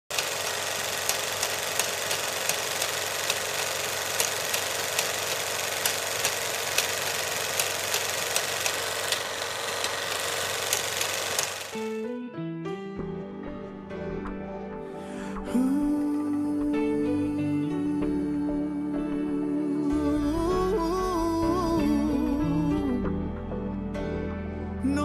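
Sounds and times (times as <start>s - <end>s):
sharp clicks: 0.1s - 11.9s
piano music: 10.8s - 25.0s.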